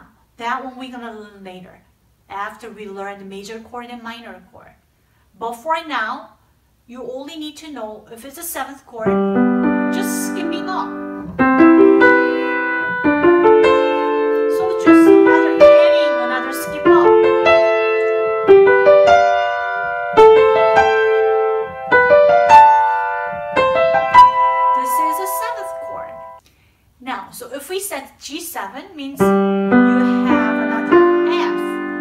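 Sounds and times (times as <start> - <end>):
piano chords: 9.0 - 26.4, 29.2 - 32.0.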